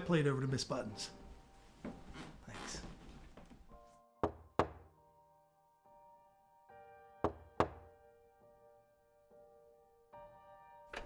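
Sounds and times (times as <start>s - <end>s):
soft background music: 0.0s - 11.0s
knocking on door: 4.2s - 4.9s, 7.2s - 7.9s.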